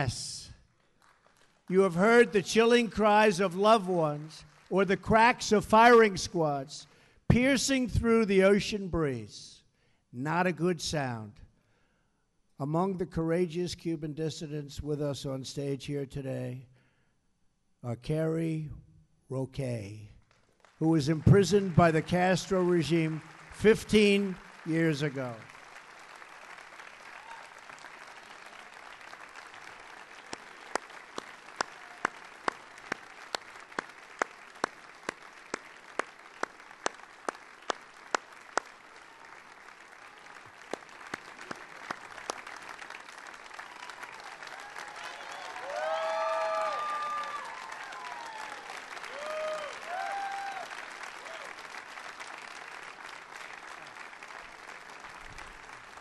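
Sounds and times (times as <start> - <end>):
audience applauding: 20.6 - 56.0
sharp nearby claps: 30.2 - 38.8, 40.4 - 45.7.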